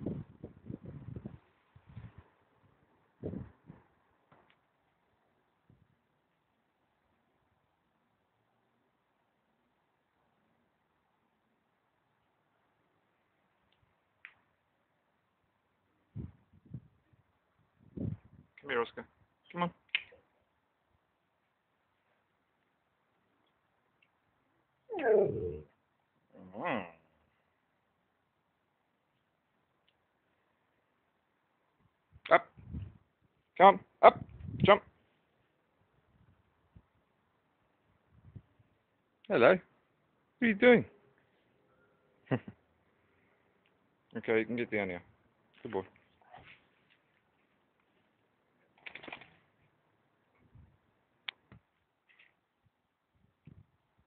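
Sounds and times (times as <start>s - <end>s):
dog moaning: 24.9s - 25.7s.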